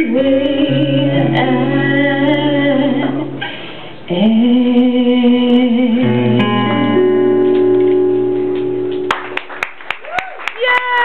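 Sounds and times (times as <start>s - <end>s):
acoustic guitar chord ringing: 0.4s - 4.4s, 6.0s - 9.3s
audience clapping: 8.5s - 11.0s.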